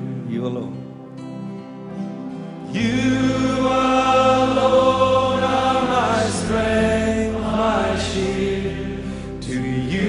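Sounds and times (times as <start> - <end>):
slow worship singing: 0.0 - 10.0.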